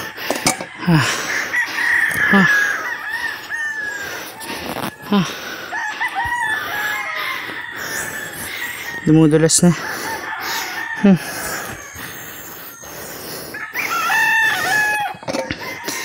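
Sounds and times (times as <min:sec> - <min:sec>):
man exhaling breathily: 0:00.0 - 0:02.9, 0:03.9 - 0:08.6, 0:09.8 - 0:14.0
roosters crowing: 0:00.0 - 0:16.0.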